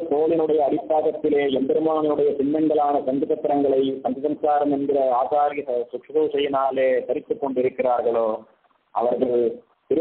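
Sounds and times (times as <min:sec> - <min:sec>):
man speaking: 0:00.0 - 0:10.0.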